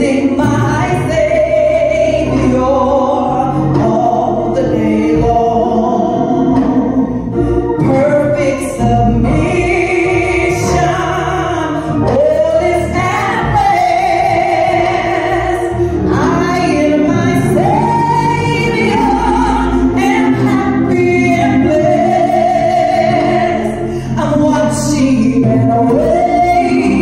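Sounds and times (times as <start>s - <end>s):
instrumental backing: 0.0s - 27.0s
woman singing gospel: 0.0s - 27.0s.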